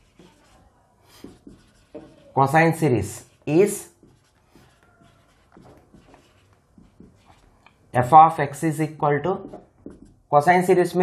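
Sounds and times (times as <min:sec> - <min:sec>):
marker scratching on whiteboard: 0:00.0 - 0:07.8, 0:09.2 - 0:11.0.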